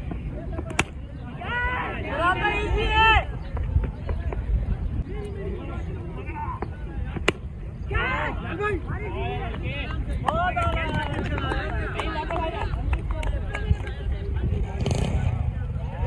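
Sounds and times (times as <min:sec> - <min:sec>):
cricket bat striking ball: 0:00.6 - 0:01.0, 0:07.1 - 0:07.5
players shouting: 0:00.6 - 0:03.5, 0:07.3 - 0:09.7.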